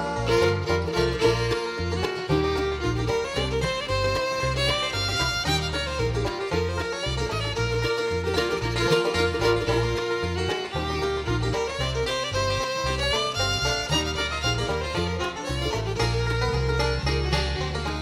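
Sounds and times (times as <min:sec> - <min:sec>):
banjo: 0:00.0 - 0:18.0
bass: 0:00.0 - 0:18.0
fiddle: 0:00.0 - 0:18.0
guitar: 0:00.0 - 0:18.0.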